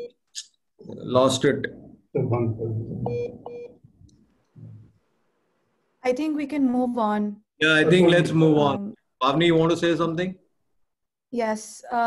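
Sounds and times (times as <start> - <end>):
low muffled sound: 1.7 - 3.4
phone beeps: 2.4 - 3.8.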